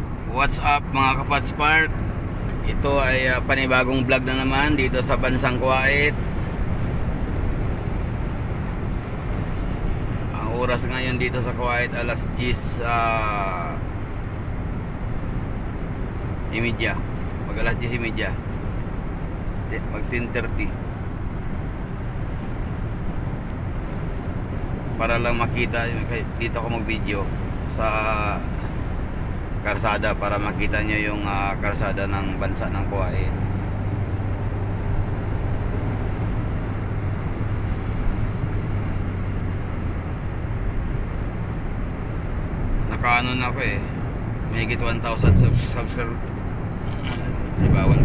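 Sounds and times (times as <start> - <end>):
car driving on highway: 0.0 - 48.0.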